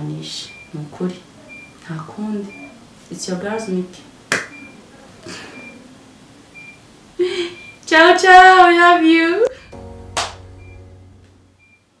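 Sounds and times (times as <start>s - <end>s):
faint musical tones: 9.5s - 12.0s
brief high beeps: 10.5s - 11.0s.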